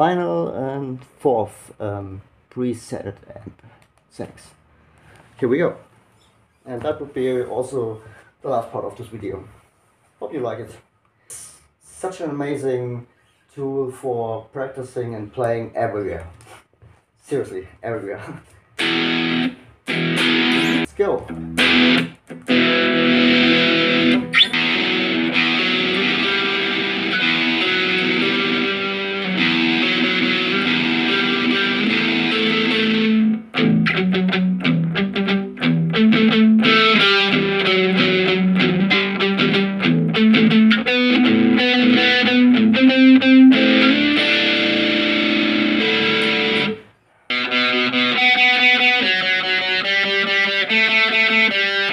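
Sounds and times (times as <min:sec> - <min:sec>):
distorted electric guitar: 0:18.8 - 0:51.9.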